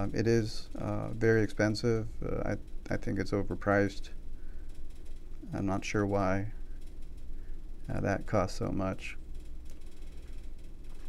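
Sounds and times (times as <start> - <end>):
low room tone hum: 0.0 - 11.0.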